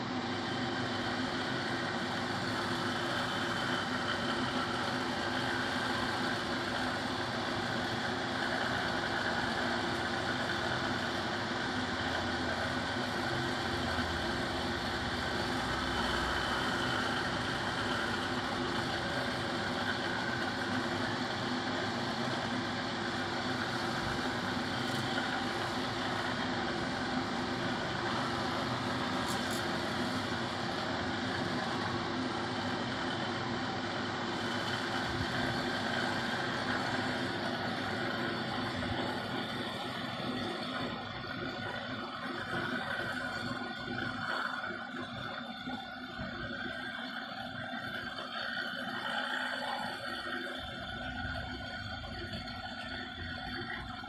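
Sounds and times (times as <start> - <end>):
electric massager motor humming: 0.0 - 54.0.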